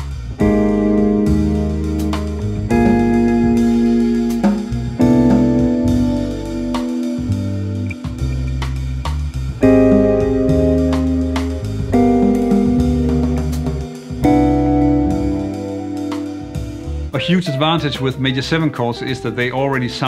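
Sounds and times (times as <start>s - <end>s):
jazz guitar chords: 0.0s - 20.0s
light drums: 0.0s - 20.0s
moving bass line: 0.0s - 20.0s.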